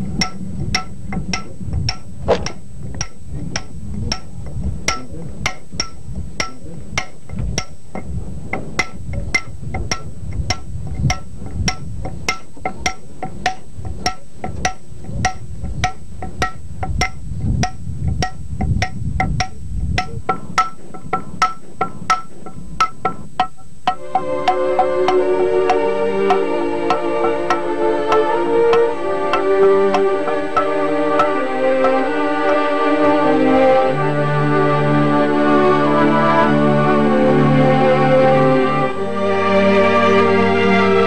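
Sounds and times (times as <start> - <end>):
hammer striking steel chisel on stone: 0.2 - 32.0.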